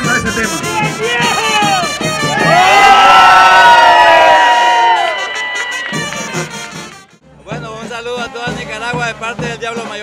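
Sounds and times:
crowd cheering and shouting: 0.7s - 6.7s.

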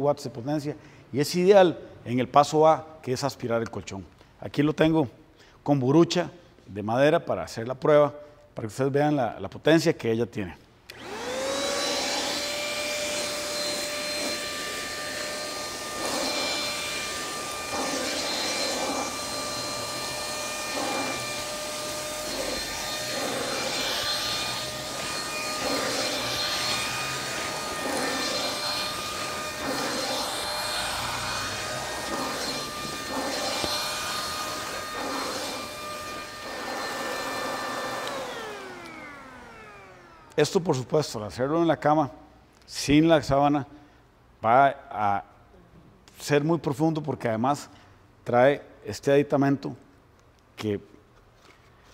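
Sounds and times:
handheld vacuum motor whine: 10.9s - 40.4s
vacuum rustling over mattress: 11.0s - 40.3s.

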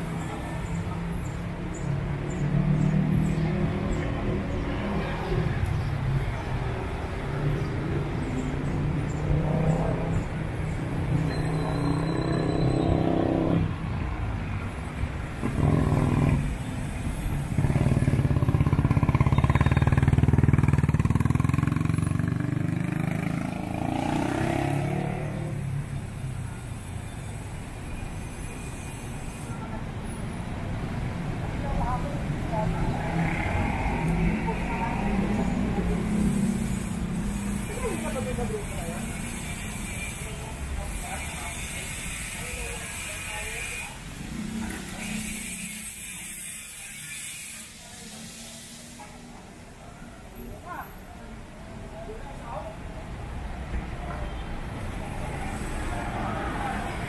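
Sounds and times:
passersby's voices: 0.0s - 16.6s, 29.4s - 57.0s
background traffic rumble: 0.0s - 57.0s
vehicle engine passing close: 17.6s - 25.6s.

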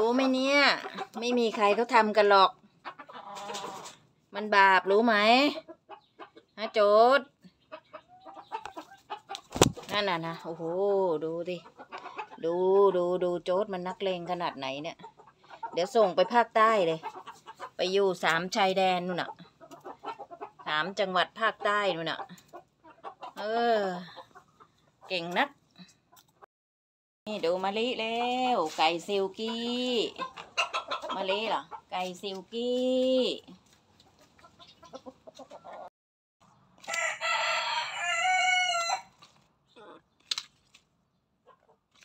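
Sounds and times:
chicken clucking: 0.0s - 13.1s, 13.7s - 25.5s, 27.5s - 35.9s, 41.4s - 42.0s
rooster clucking low: 29.4s - 31.9s.

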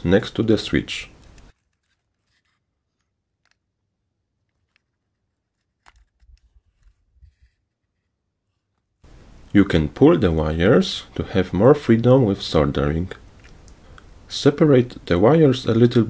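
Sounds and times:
faint small clicks and scrapes: 1.2s - 9.0s.

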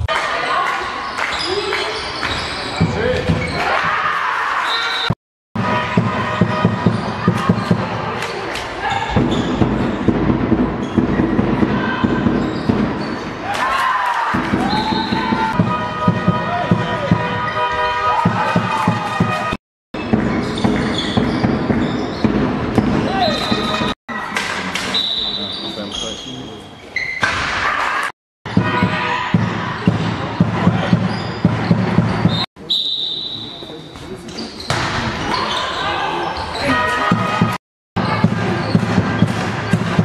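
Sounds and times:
sports hall background noise: 0.0s - 40.0s
shoe squeaks: 1.0s - 3.7s, 6.5s - 10.1s, 10.8s - 13.4s, 20.0s - 23.9s, 24.9s - 27.2s, 30.8s - 37.2s
ball bouncing on hall floor: 5.6s - 13.3s, 14.3s - 24.9s.

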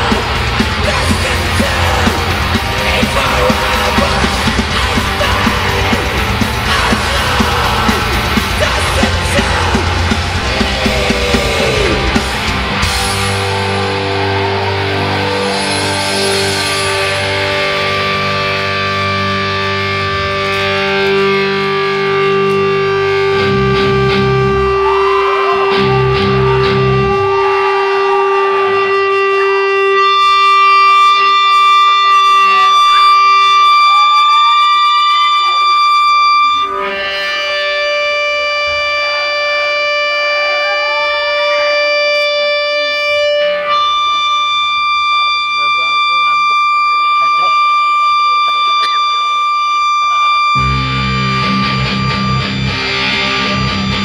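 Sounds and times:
held electric guitar tones: 0.0s - 54.0s
metal band playing: 0.0s - 54.0s.

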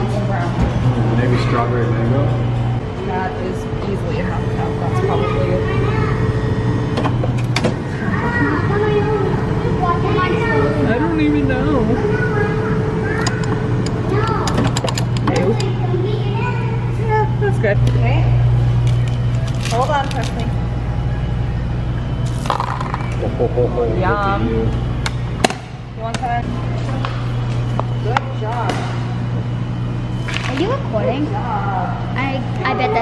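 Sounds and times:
frozen yogurt machine humming: 0.0s - 33.0s
chattering voices: 7.8s - 17.8s, 23.0s - 24.9s.

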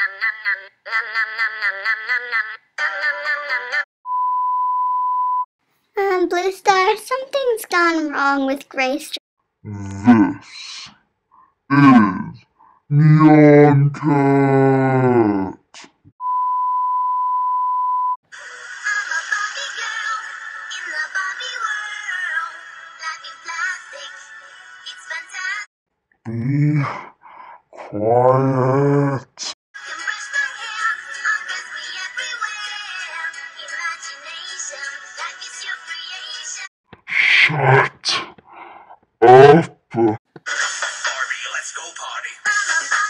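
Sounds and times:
synthesized singing voice: 0.0s - 3.9s, 11.7s - 13.9s, 18.4s - 25.5s, 29.8s - 36.7s, 39.2s - 43.0s
steady test-tone beep: 4.1s - 5.5s, 16.2s - 18.2s
song with high synthesized singing: 40.5s - 43.0s.

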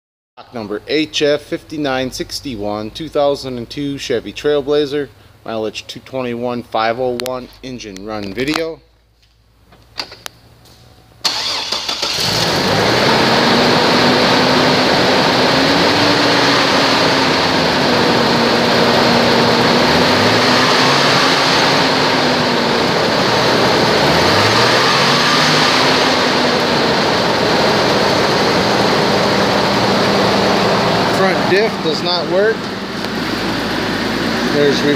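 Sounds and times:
car engine starting and idling: 9.5s - 34.9s.

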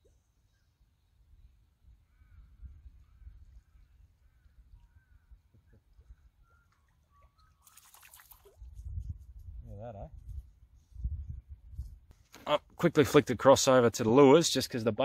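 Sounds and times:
faint high chirp: 4.2s - 8.2s
fish splashing in water: 6.6s - 8.6s
wind on microphone: 8.5s - 12.2s.

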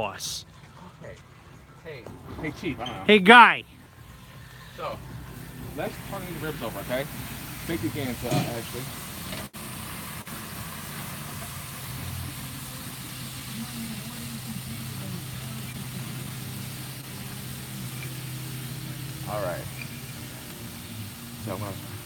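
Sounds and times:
even hiss: 1.8s - 22.0s
person speaking: 2.6s - 3.6s.

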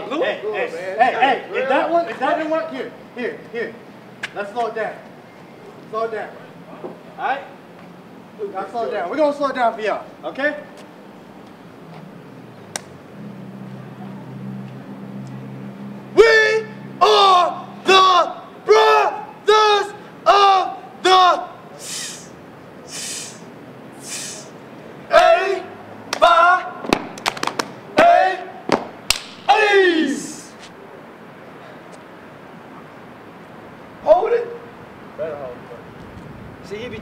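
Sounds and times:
sharp clap-like smack: 12.7s - 13.0s, 26.1s - 27.8s, 28.7s - 29.5s
shouted chant calls: 16.1s - 26.8s, 27.9s - 28.8s, 29.4s - 30.6s.

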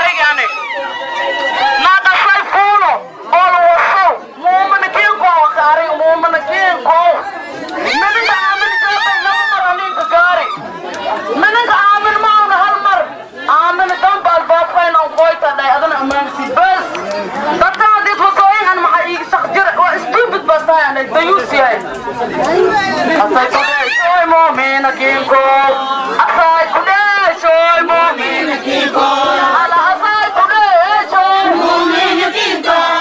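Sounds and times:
woman speaking through megaphone: 0.0s - 21.9s, 22.5s - 33.0s.

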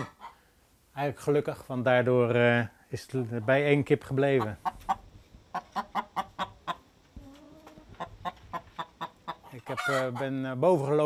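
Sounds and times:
hens clucking: 0.0s - 0.4s, 3.4s - 11.0s.

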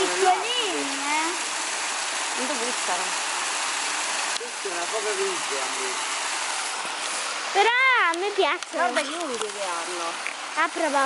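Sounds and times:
child's voice: 0.0s - 1.4s, 7.5s - 9.8s, 10.6s - 11.0s
running water: 0.0s - 11.0s.

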